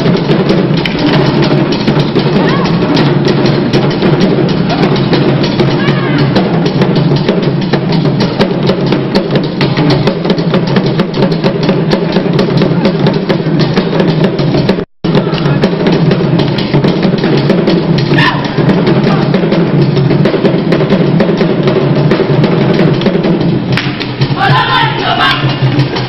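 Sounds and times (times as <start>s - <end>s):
fast drum percussion music: 0.0s - 26.0s.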